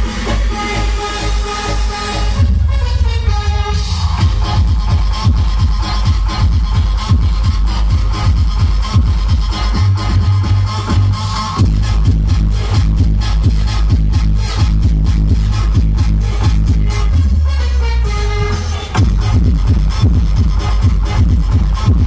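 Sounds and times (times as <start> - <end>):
electronic dance music: 0.0 - 22.0.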